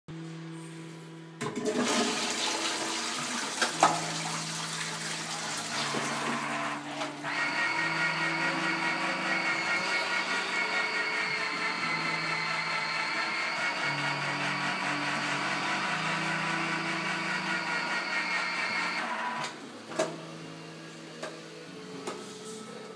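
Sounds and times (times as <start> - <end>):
toilet flushing water rush: 1.4 - 19.4.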